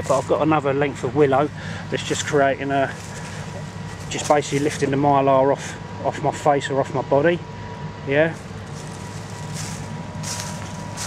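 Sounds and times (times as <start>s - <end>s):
low hum of factory machinery: 0.0s - 11.0s
rustling: 8.4s - 11.0s.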